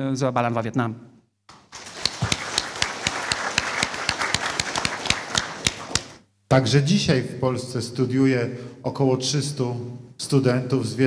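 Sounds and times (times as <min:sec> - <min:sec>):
audience applauding: 0:01.5 - 0:06.2.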